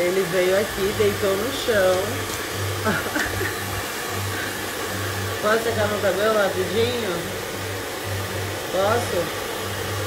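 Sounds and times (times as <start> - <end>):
hair dryer blowing: 0.0 - 10.0.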